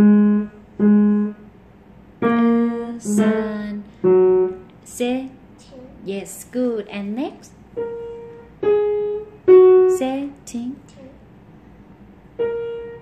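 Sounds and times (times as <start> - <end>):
slow piano notes: 0.0 - 4.9, 7.7 - 11.2, 12.2 - 13.0.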